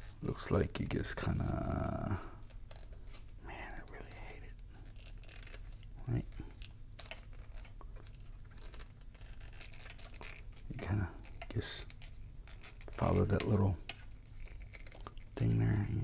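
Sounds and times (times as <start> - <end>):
light scratching of plastic: 4.0 - 5.9, 6.9 - 15.0.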